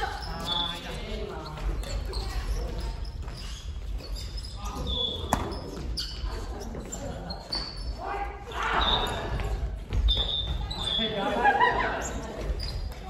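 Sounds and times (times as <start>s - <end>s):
shoe squeaks: 0.0s - 13.0s
footsteps on wooden floor: 9.1s - 10.9s.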